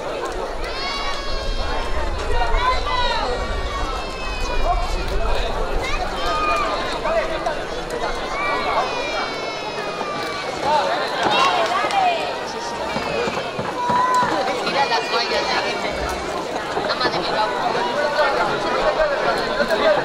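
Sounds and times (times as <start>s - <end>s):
people shouting and calling out: 0.0s - 20.0s
low rumble: 1.0s - 8.4s.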